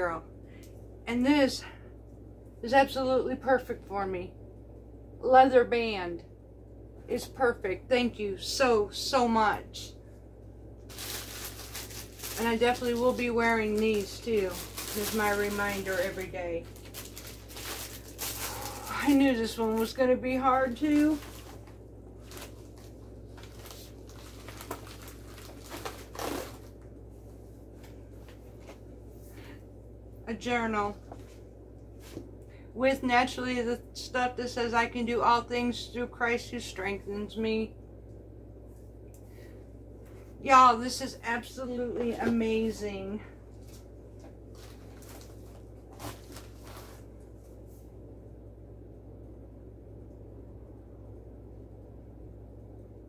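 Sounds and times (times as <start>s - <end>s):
low hum: 0.0s - 53.0s
plastic and paper rustling: 10.8s - 28.8s, 43.5s - 47.6s.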